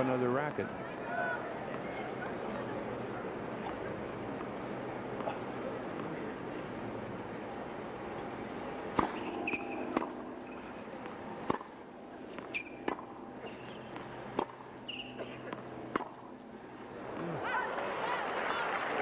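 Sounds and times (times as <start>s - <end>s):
tennis racket striking ball: 8.9s - 16.3s
sneaker squeaks: 9.0s - 10.8s, 12.3s - 14.1s, 14.8s - 15.6s.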